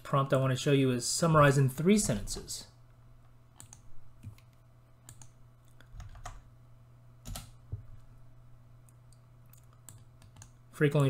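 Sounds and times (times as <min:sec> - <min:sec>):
low steady hum: 0:00.0 - 0:11.0
keyboard and mouse clicks: 0:03.6 - 0:06.5, 0:08.8 - 0:10.6.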